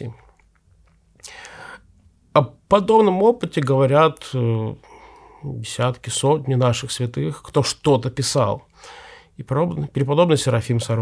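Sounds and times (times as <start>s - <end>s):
man speaking: 0.0s - 0.3s, 2.3s - 8.7s, 9.4s - 11.0s
man breathing in: 1.2s - 1.9s, 4.8s - 5.5s, 8.7s - 9.4s.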